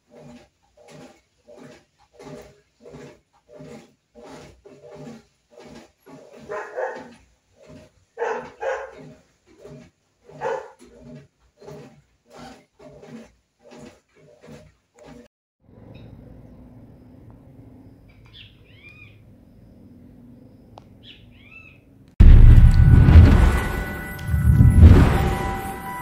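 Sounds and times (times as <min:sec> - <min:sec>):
dog barking: 0:06.4 - 0:07.1, 0:08.2 - 0:09.0, 0:10.4 - 0:10.8.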